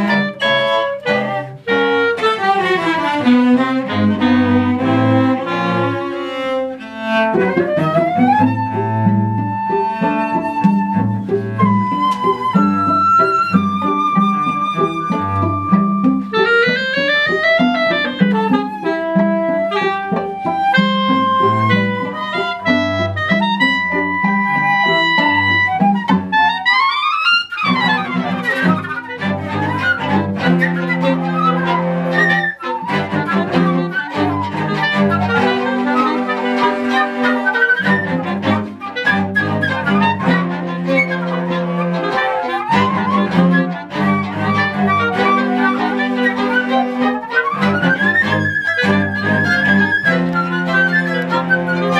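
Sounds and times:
woodwinds and bowed strings playing: 0.0s - 51.9s.

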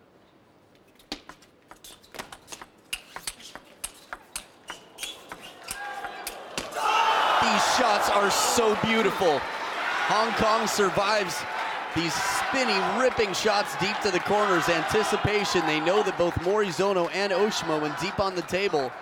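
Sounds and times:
crowd cheering and shouting: 5.7s - 19.0s.

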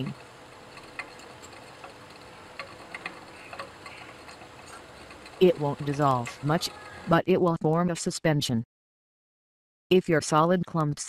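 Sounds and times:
stir bar ticking against glass: 0.0s - 7.1s
faint steady background hum: 0.0s - 8.0s.

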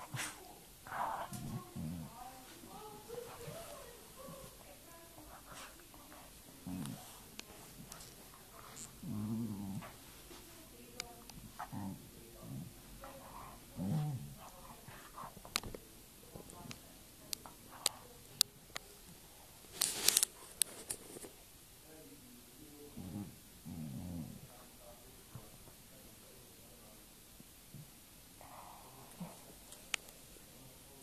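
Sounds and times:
pet growling low: 0.8s - 2.3s, 5.3s - 10.0s, 11.4s - 15.2s, 22.9s - 24.6s.

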